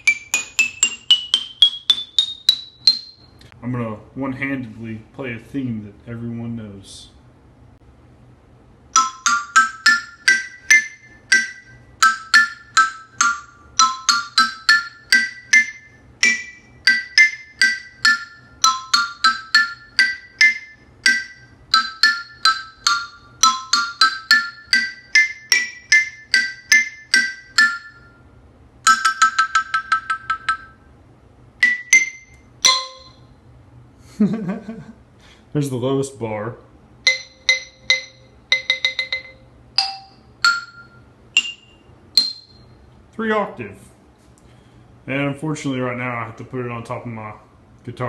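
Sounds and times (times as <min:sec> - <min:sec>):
xylophone melody: 0:00.0 - 0:03.5, 0:08.9 - 0:28.2, 0:28.8 - 0:30.9, 0:31.6 - 0:33.3, 0:37.0 - 0:42.7.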